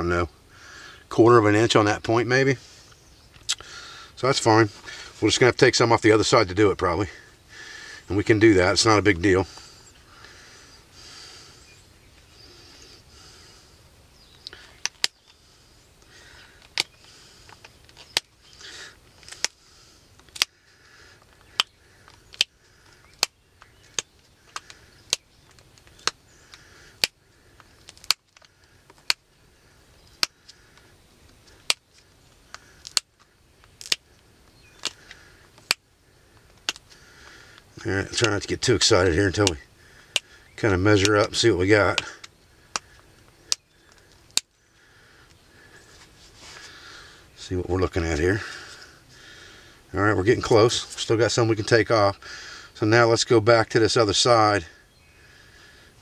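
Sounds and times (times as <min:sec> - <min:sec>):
stone flaking snapping clicks: 0:14.4 - 0:15.3, 0:16.0 - 0:18.3, 0:19.2 - 0:19.6, 0:20.2 - 0:20.6, 0:21.2 - 0:29.3, 0:30.0 - 0:38.5, 0:39.4 - 0:40.4, 0:41.9 - 0:44.6.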